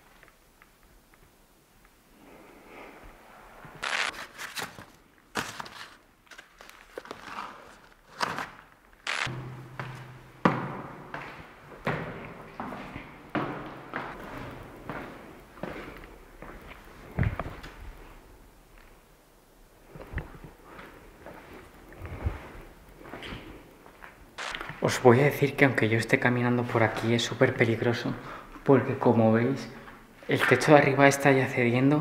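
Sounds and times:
footsteps on stone stairs: 0:09.3 - 0:18.0.

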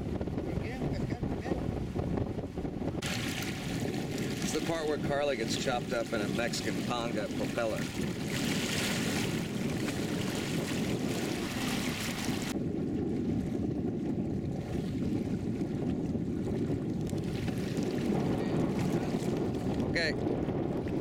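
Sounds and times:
wind rumble on microphone: 0:00.0 - 0:21.0
water splashing against boat: 0:02.8 - 0:21.0.

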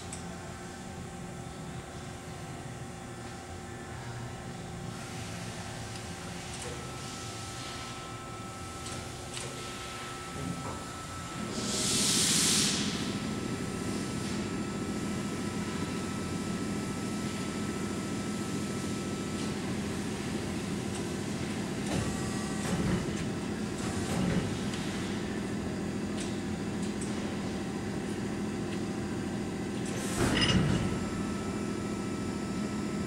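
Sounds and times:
loud hiss: 0:11.5 - 0:13.1.

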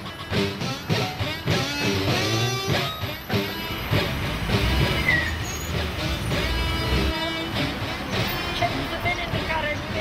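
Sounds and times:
guitar music: 0:00.0 - 0:10.0
minibus engine rumbling: 0:00.0 - 0:10.0.

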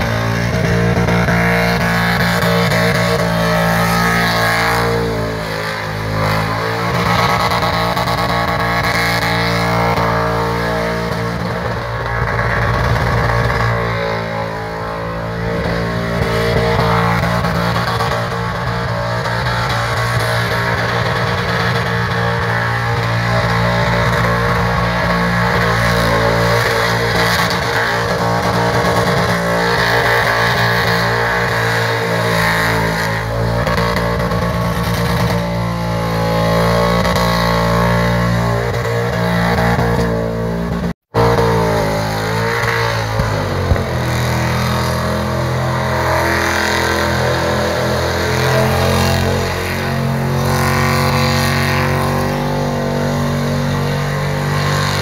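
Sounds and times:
engine revving high: 0:00.0 - 0:55.0.

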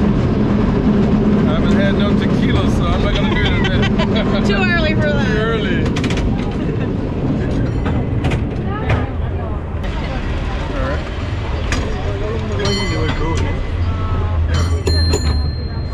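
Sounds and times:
cable car rumbling: 0:00.0 - 0:15.9
people's voices: 0:01.4 - 0:15.9
clanks and rattles: 0:05.6 - 0:09.3.

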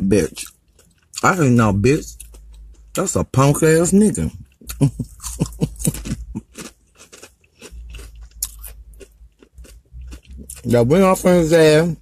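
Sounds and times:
person chewing crunchy chips: 0:00.0 - 0:03.4, 0:04.1 - 0:11.6.

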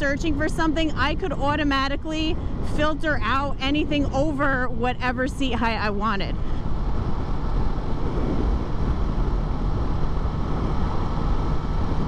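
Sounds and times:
wind rushing over microphone: 0:00.0 - 0:12.0
motorcycle engine cruising: 0:06.4 - 0:12.0.

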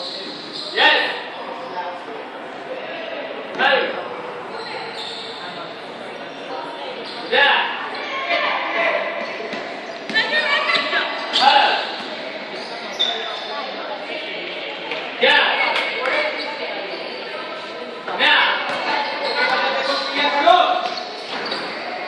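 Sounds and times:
students shouting in echoing hall: 0:06.5 - 0:09.2, 0:10.2 - 0:11.8.

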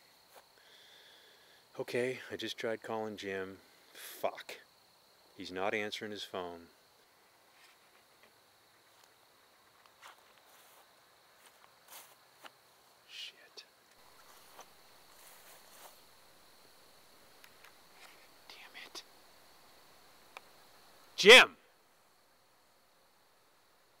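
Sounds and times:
faint rustles and clicks: 0:07.5 - 0:13.0, 0:13.9 - 0:16.3, 0:17.4 - 0:19.1.

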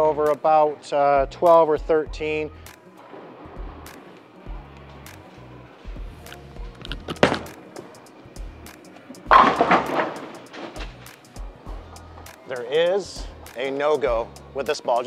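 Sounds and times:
background music with bass beat: 0:01.1 - 0:15.0
bowling pins clattering: 0:03.0 - 0:12.4
bowling ball landing on lane: 0:06.9 - 0:07.9, 0:09.3 - 0:11.0.

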